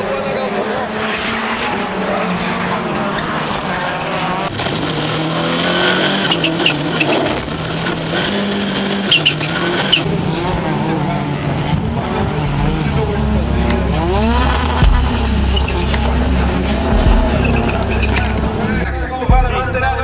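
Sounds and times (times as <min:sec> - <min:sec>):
car engines revving: 0:00.0 - 0:20.0
tyres skidding: 0:00.4 - 0:10.2, 0:11.4 - 0:19.3.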